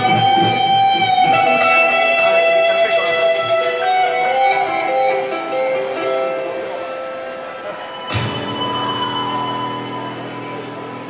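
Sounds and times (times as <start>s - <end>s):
electric guitar slow melody: 0.0s - 11.0s.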